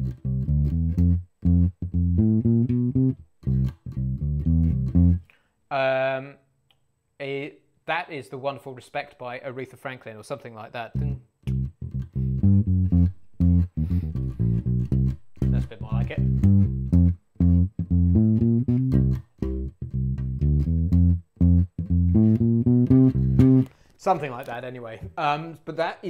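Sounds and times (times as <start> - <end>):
electric bass guitar line: 0.0 - 5.3, 11.0 - 23.8.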